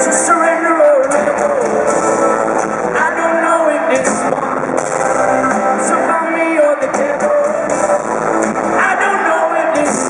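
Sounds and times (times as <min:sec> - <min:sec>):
drums beating: 0:00.0 - 0:10.0
live band music: 0:00.0 - 0:10.0.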